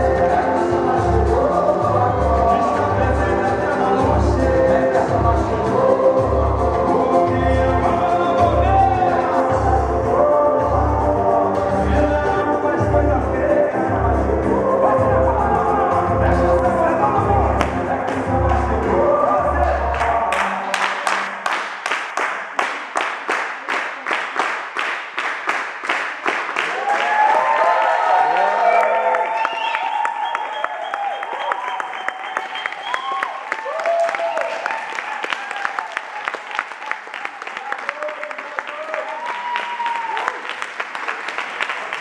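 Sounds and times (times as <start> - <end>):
samba music: 0.0 - 26.5
crowd clapping in unison: 17.6 - 18.7, 19.9 - 42.0
whoops and cheering: 26.7 - 40.6.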